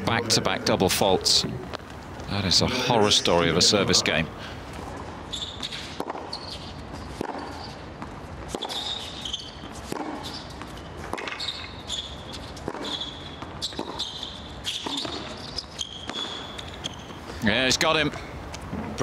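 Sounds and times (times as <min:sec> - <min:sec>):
shoes squeaking on court: 0:04.7 - 0:17.4
racquets striking tennis ball: 0:04.8 - 0:17.4
tennis ball bouncing: 0:04.9 - 0:17.2.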